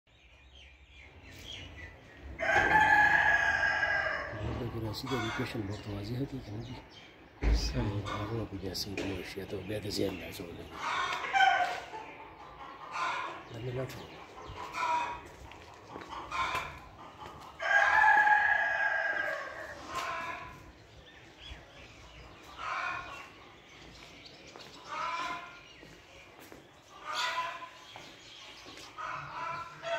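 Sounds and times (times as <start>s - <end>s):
rooster crowing: 2.4s - 4.4s, 11.1s - 11.9s, 17.6s - 20.6s
short chicken calls: 10.8s - 12.0s, 16.1s - 20.7s, 24.9s - 25.6s, 26.9s - 27.8s.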